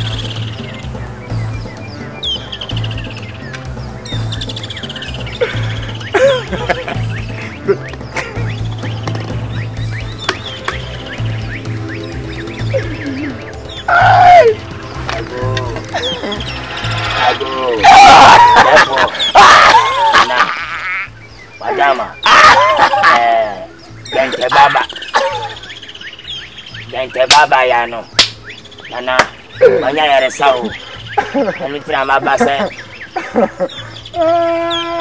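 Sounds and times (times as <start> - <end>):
film music with pulsing beat: 0.0 - 35.0
high chirping: 0.0 - 35.0
loud cry: 13.9 - 14.6, 17.1 - 21.1, 21.7 - 23.5
sharp percussive clicks: 27.2 - 28.5
sharp click: 28.2 - 28.4.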